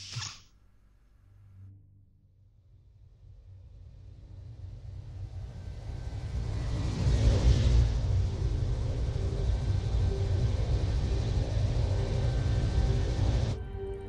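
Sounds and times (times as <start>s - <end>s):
deep steady engine rumble: 5.0s - 13.9s.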